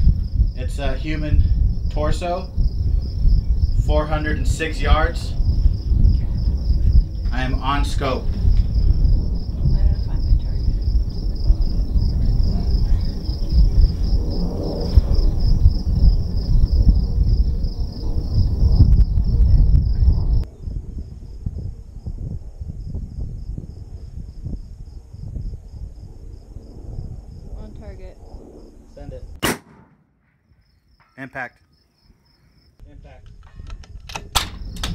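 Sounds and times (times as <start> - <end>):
insects chirping: 0.0 - 34.9
loud low rumble: 5.2 - 21.6.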